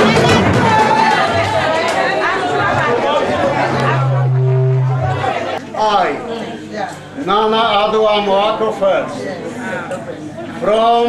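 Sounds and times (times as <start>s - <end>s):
steady low tone: 3.2s - 5.6s.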